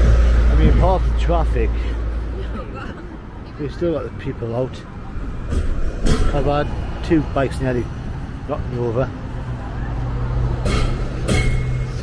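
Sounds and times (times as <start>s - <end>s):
bus engine passing: 0.0s - 12.0s.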